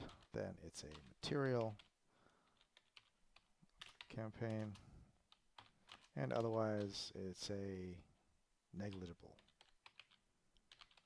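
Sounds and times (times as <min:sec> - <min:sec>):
computer keyboard typing: 0:00.0 - 0:07.0, 0:08.9 - 0:11.0.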